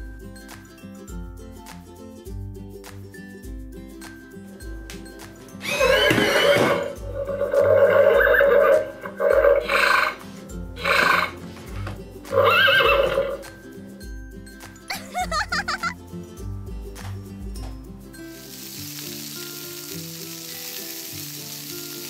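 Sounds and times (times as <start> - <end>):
horse whinnies: 5.6 - 10.2, 10.8 - 11.4, 12.3 - 13.4
background music with bass beat: 13.0 - 18.2.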